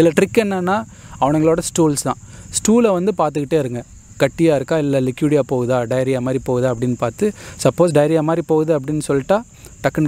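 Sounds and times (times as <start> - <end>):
crickets chirring: 0.0 - 10.0
person talking: 0.0 - 10.0.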